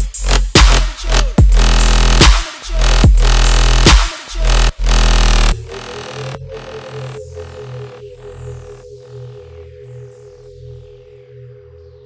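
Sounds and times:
heavy dubstep bass: 0.0 - 8.8
pulsing sub-bass: 0.0 - 12.0.

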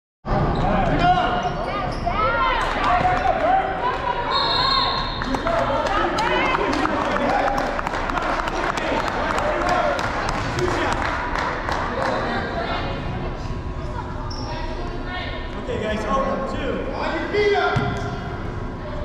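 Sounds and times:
players' voices: 0.3 - 19.0
sneakers squeaking on floor: 0.5 - 2.3, 14.3 - 14.7.

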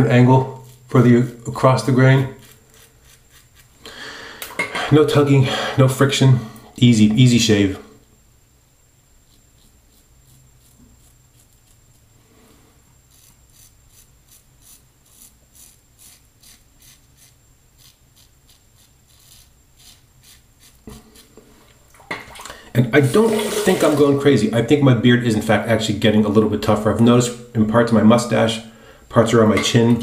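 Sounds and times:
razor rasping through stubble: 0.2 - 3.8, 9.2 - 12.1, 13.0 - 21.4.

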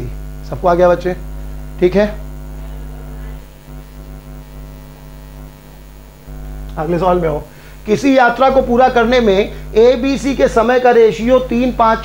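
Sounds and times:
electrical mains hum: 0.0 - 12.0
man's voice: 6.7 - 12.0.

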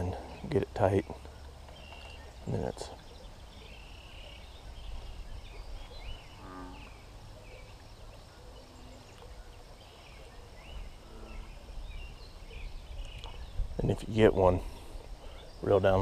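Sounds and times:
birds chirping: 0.0 - 16.0
wind rumble on microphone: 4.4 - 6.5, 10.6 - 15.2
low animal call: 6.2 - 7.1.

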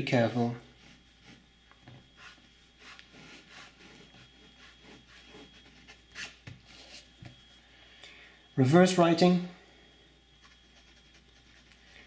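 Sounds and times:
pen nib scratching on paper: 10.4 - 12.0.

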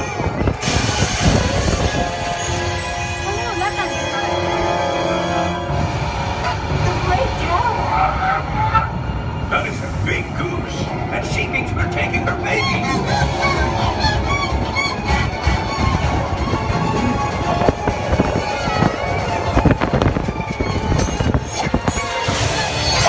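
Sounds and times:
coaster train rumbling on track: 0.0 - 23.0
ride music: 0.0 - 23.0
voices: 1.8 - 5.8, 6.4 - 19.4.

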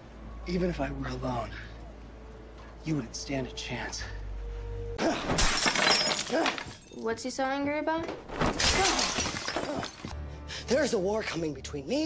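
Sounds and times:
glass shattering: 5.2 - 7.2, 8.4 - 10.1.

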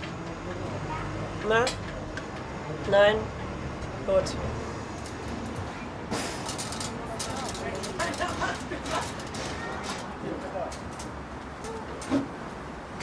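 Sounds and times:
steady background noise: 0.0 - 13.0.

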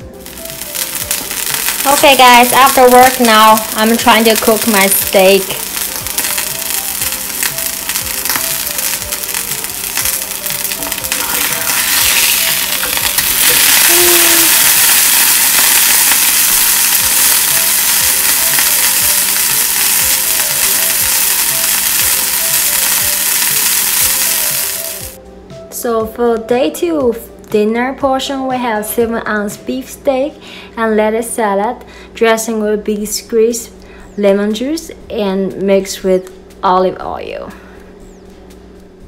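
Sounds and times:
faint background music: 0.0 - 39.0
steak sizzling in a skillet: 0.1 - 25.2.

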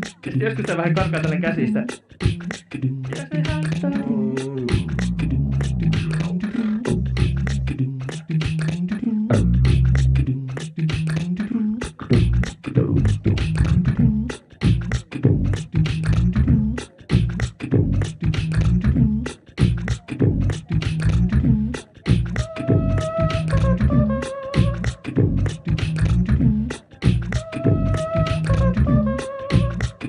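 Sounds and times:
beatbox vocal percussion: 0.0 - 30.0
repeating low bass line: 3.7 - 8.0, 9.3 - 10.5, 12.0 - 29.8.

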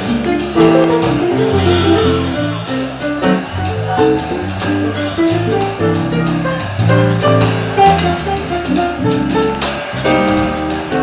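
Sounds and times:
guitar melody: 0.0 - 2.4, 3.3 - 11.0
bass line: 0.0 - 11.0
cajon: 0.0 - 11.0
cymbals: 0.0 - 11.0
piano: 0.0 - 11.0.

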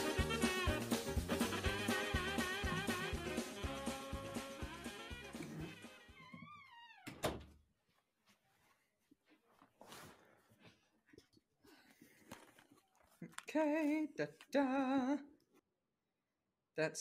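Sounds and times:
music with drum beat: 0.0 - 5.3.

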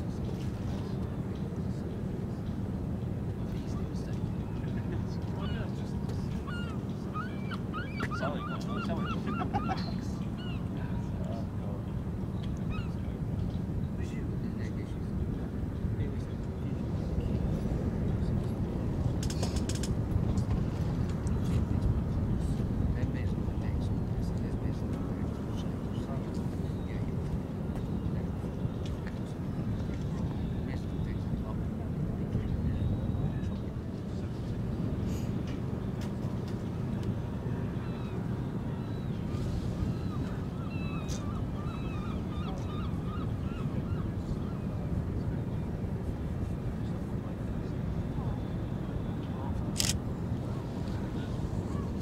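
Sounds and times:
faint distant voices: 0.0 - 52.0
low outdoor rumble: 0.0 - 52.0
birds honking: 6.5 - 10.6.

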